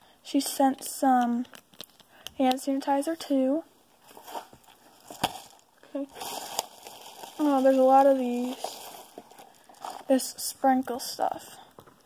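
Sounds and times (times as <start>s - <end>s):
packaging rustling and crinkling: 1.4s - 2.6s, 4.0s - 10.3s.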